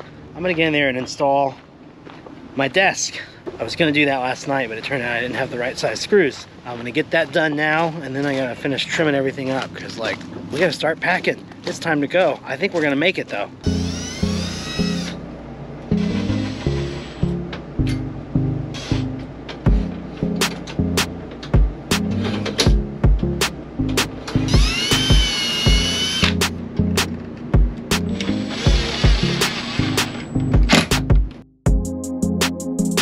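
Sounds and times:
cordless drill whining: 13.7 - 15.2, 24.4 - 26.5, 28.2 - 30.3
background music with steady beat: 15.9 - 33.0.

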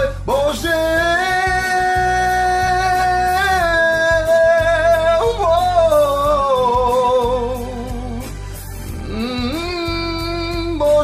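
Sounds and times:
man singing held vowel: 0.0 - 8.3, 9.0 - 11.0
backing track: 0.0 - 11.0.

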